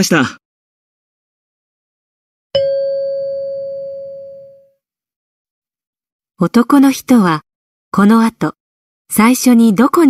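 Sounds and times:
bell-like chime: 2.6 - 4.7.

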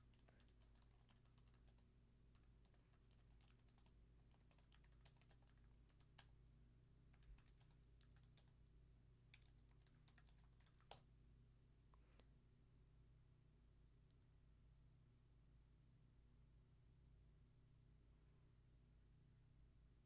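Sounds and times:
keyboard typing: 0.0 - 6.4, 7.1 - 8.6, 9.3 - 11.0
low steady hum: 0.0 - 20.0.

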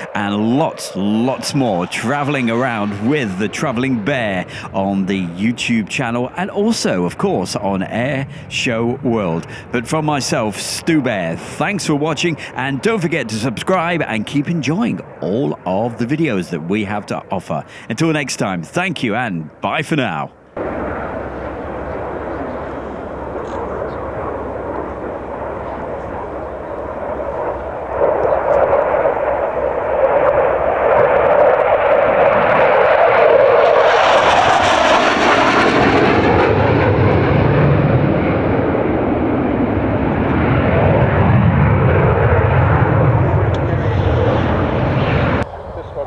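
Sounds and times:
jet aircraft passing: 0.0 - 46.0.

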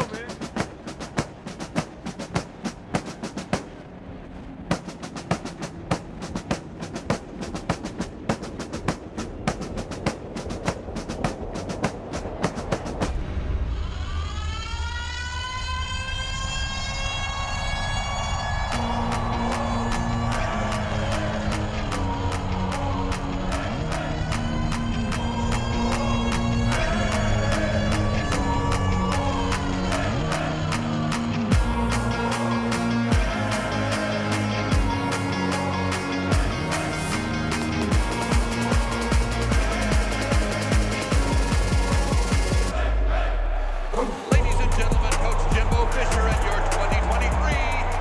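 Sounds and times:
marching snare drums: 0.0 - 3.9, 4.6 - 13.1, 44.3 - 48.0
steady pulsing beat: 0.0 - 13.5, 18.2 - 48.0
low rumble: 0.0 - 48.0
rising synth swell: 13.0 - 48.0.

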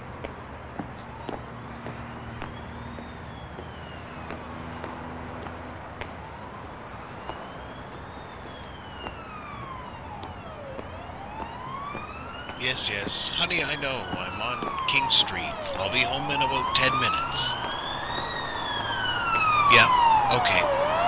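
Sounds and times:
city traffic rumble: 0.0 - 21.0
police siren wailing: 0.8 - 21.0.

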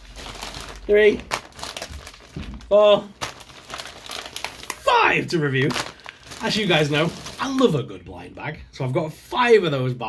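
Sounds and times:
plastic packets rustling: 0.0 - 7.8.

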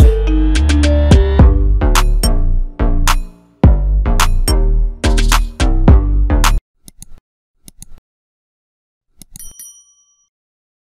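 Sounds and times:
bright bell ding: 9.4 - 10.3.

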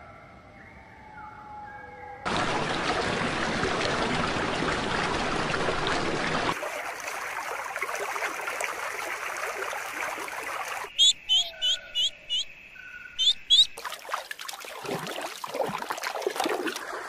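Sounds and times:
water trickling and splashing: 2.3 - 11.0, 13.8 - 17.0
bird chirping: 10.9 - 13.8.

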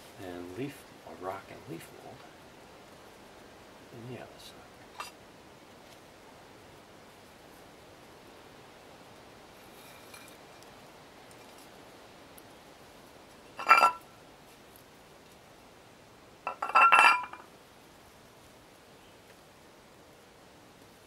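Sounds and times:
small plate clinking on stone: 5.0 - 5.2, 13.6 - 14.1, 16.5 - 17.5.

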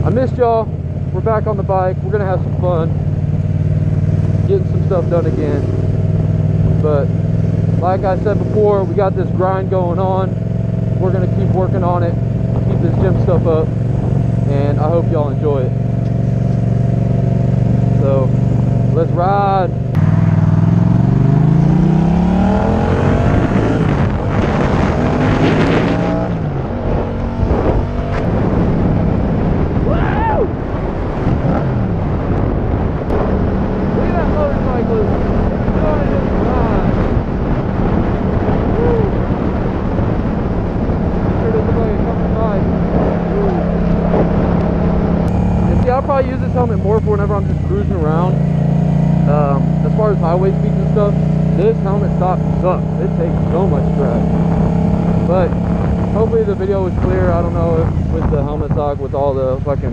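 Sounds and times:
motorcycle engine accelerating: 0.0 - 59.9
wind noise on microphone: 2.5 - 18.9, 19.7 - 49.7, 50.3 - 59.9.

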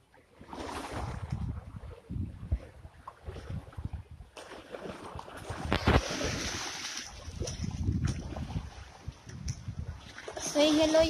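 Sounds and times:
wind buffeting microphone: 0.7 - 4.4, 5.1 - 11.0.

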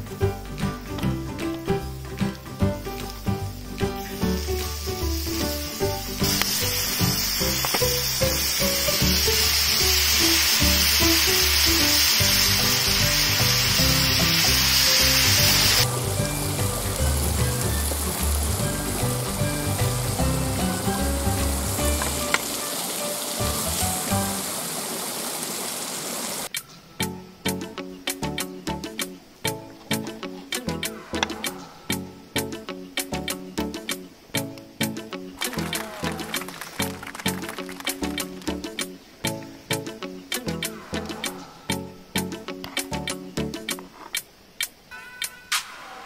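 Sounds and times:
background music with bass: 0.0 - 22.5, 27.0 - 43.7
meat sizzling in grill pan: 4.0 - 26.5.

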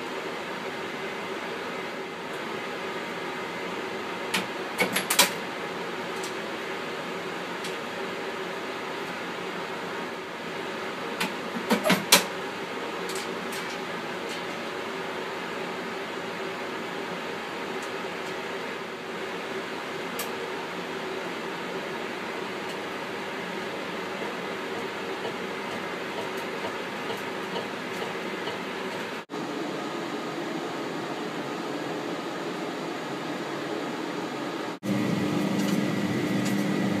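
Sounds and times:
ventilation hum and hiss: 0.0 - 37.0.

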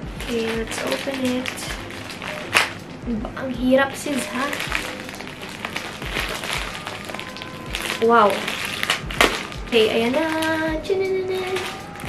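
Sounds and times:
plastic pouch crinkling: 0.0 - 3.0, 3.6 - 12.0.

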